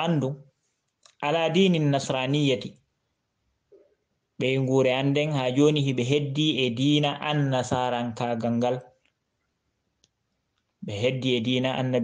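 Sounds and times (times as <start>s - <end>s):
person speaking: 0.0s - 0.4s, 1.1s - 2.8s, 4.4s - 8.8s, 10.8s - 12.0s.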